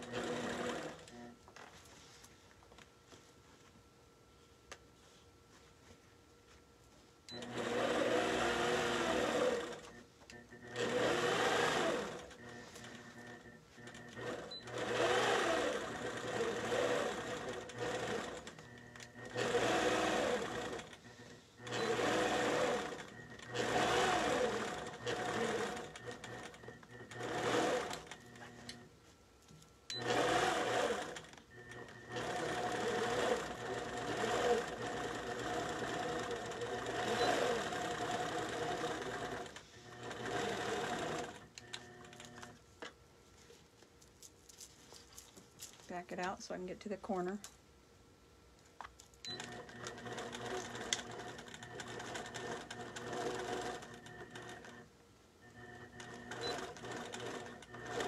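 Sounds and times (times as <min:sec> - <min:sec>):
quilting machine stitching: 0:00.0 - 0:01.4, 0:07.3 - 0:28.9, 0:29.9 - 0:42.6, 0:49.3 - 0:58.0.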